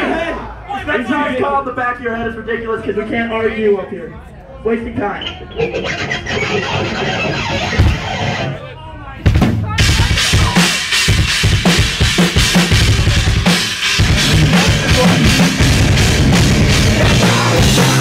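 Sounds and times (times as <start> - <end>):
live metal band playing: 5.4 - 8.6, 9.8 - 18.0.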